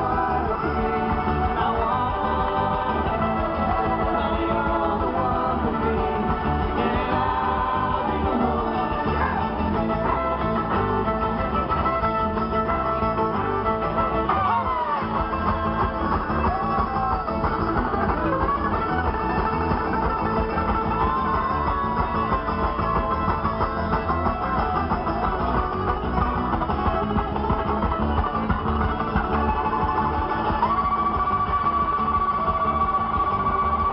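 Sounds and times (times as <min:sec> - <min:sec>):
string band playing live: 0:00.0 - 0:33.9.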